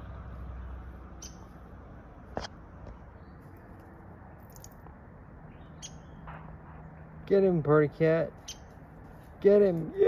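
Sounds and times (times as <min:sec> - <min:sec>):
high bird chirps: 0:01.1 - 0:01.6, 0:05.5 - 0:06.3.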